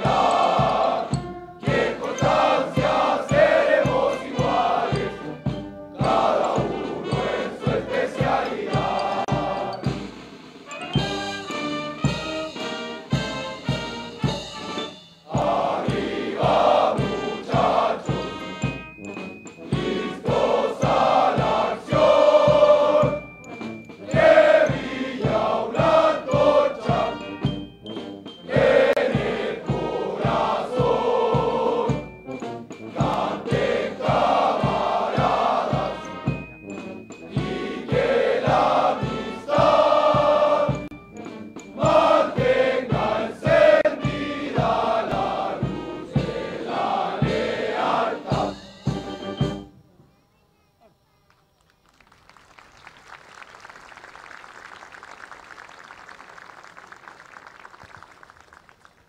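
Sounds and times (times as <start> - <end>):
chorus of soldiers singing: 0.0 - 10.2, 11.0 - 27.6, 28.3 - 49.6.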